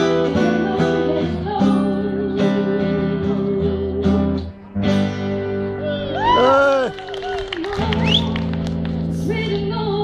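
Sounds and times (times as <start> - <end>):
woman singing with vibrato: 0.0 - 4.4, 5.7 - 8.4, 9.1 - 10.0
acoustic guitars strumming chords: 0.0 - 10.0.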